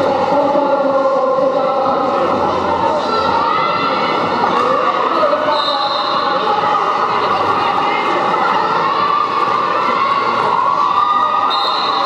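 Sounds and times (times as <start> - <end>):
spectators cheering and shouting: 2.0 - 12.0.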